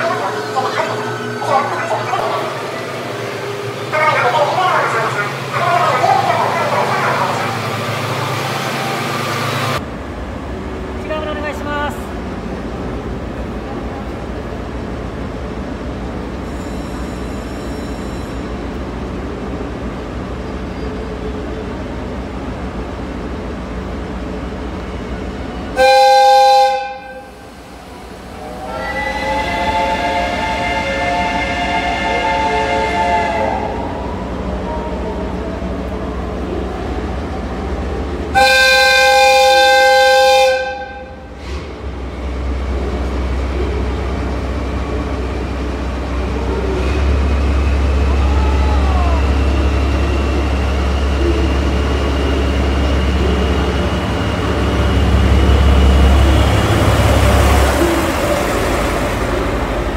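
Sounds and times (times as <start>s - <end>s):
diesel locomotive engine rumbling: 0.0s - 59.9s
train whistle blasts: 25.8s - 27.4s, 28.6s - 33.8s, 38.4s - 41.2s.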